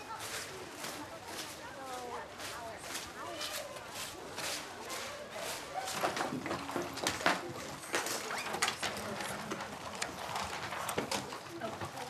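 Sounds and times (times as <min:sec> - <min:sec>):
children's voices murmuring: 0:00.0 - 0:12.0.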